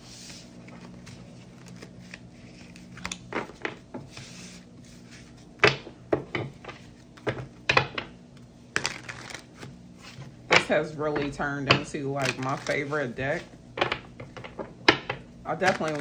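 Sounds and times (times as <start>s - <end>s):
faint steady hum: 0.0s - 16.0s
cards tapping on wooden desk: 5.6s - 8.1s.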